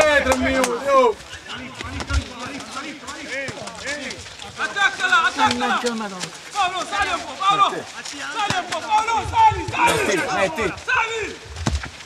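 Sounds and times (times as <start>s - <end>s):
men shouting and calling: 0.0s - 11.6s.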